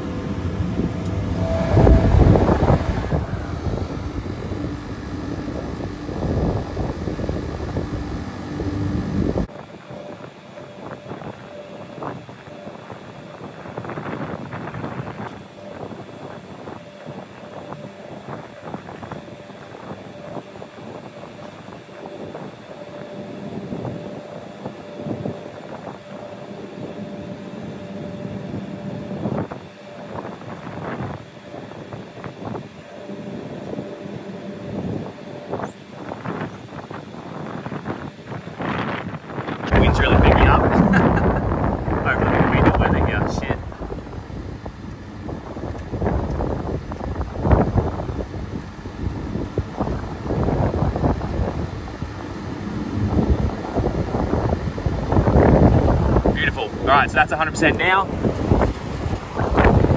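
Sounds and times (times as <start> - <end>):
fans running and speeding up: 0.0 - 59.9.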